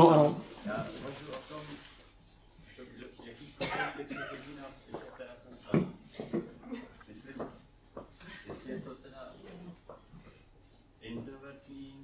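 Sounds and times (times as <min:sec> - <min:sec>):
person coughing: 0:03.6 - 0:04.5.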